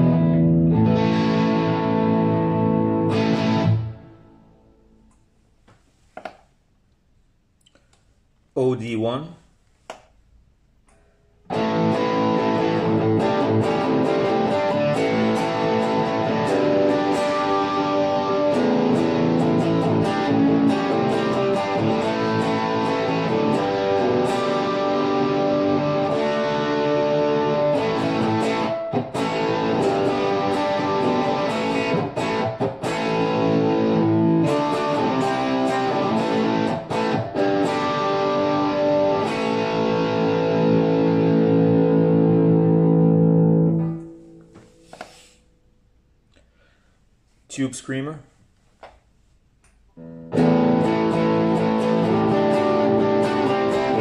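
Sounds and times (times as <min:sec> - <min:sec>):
overdriven electric guitar riffs: 0:00.0 - 0:05.0, 0:11.4 - 0:44.6, 0:50.0 - 0:54.0.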